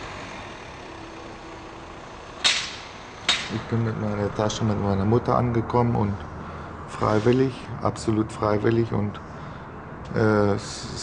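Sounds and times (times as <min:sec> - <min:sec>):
car engine running: 0:00.0 - 0:07.5.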